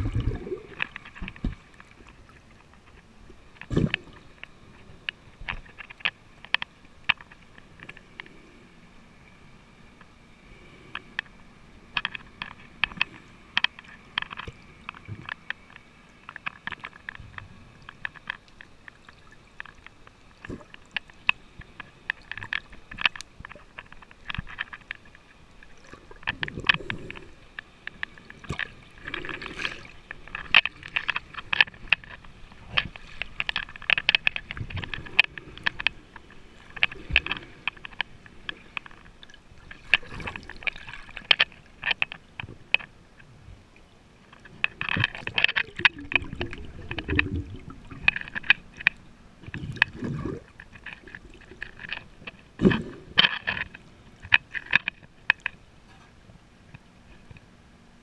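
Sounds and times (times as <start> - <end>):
underwater clicks and ticks: 0.0 - 58.0
water sloshing and gurgling: 0.0 - 58.0.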